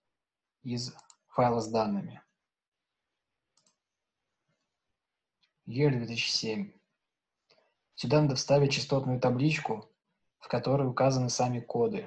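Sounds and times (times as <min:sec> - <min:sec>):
faint computer clicks: 0:00.8 - 0:01.3, 0:03.5 - 0:03.9.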